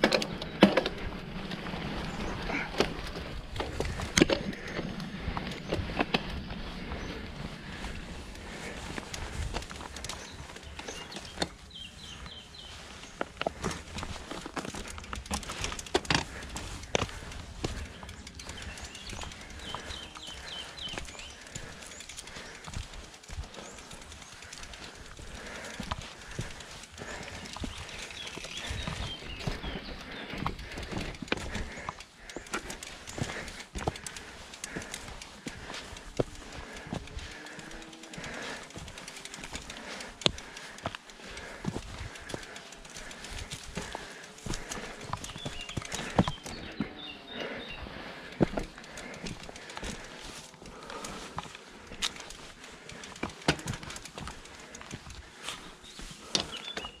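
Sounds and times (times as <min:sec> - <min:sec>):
footsteps on rocky dirt trail: 0:00.0 - 0:57.0.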